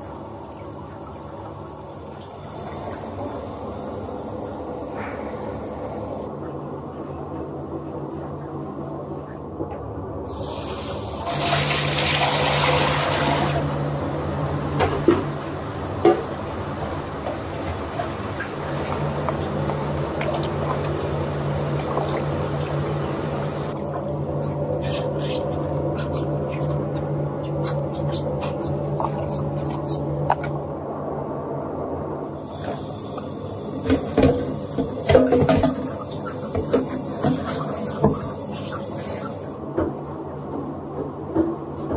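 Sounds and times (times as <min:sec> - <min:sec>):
steady low hum: 0:00.0 - 0:11.3, 0:13.5 - 0:41.9
tap water splashing in a sink: 0:17.2 - 0:23.0.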